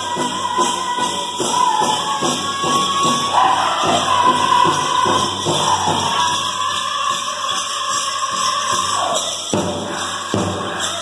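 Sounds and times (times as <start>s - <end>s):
high-pitched group singing: 0.0s - 11.0s.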